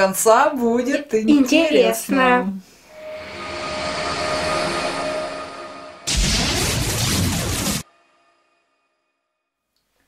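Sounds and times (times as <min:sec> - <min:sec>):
rushing whoosh: 0:02.8 - 0:07.1
steady tone: 0:02.8 - 0:09.0.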